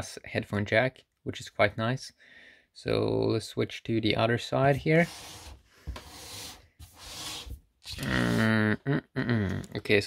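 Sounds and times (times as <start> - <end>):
laptop scraping on a desk: 4.9 - 7.6.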